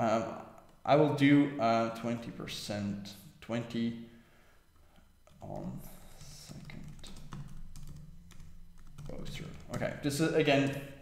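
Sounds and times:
low steady hum: 0.0 - 11.0
computer keyboard typing: 5.3 - 10.0.

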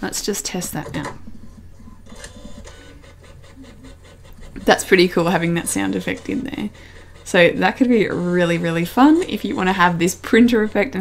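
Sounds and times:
printer clicking: 2.0 - 11.0.

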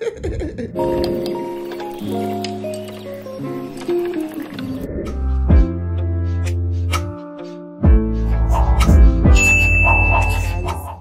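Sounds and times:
music with deep bass: 5.0 - 11.0
bright bell-like ding: 9.4 - 10.6.

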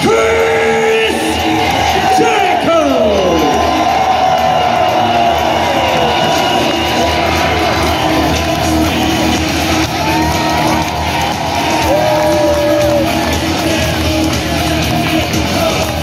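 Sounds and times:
crowd cheering and whooping: 0.0 - 16.0
entrance music over sound system: 0.0 - 16.0.

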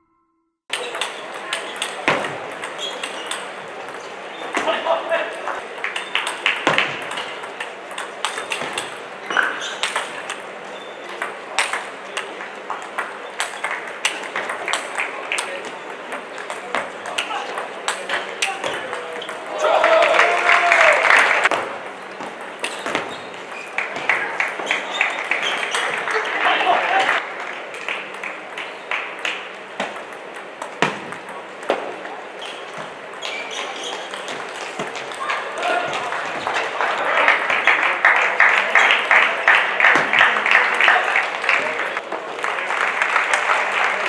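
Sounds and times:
loud shout: 19.5 - 21.5, 26.1 - 27.2, 35.2 - 37.8.

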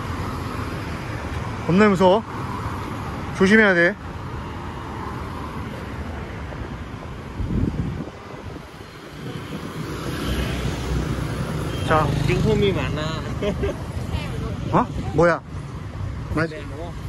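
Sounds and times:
cars passing on street: 0.0 - 17.0.

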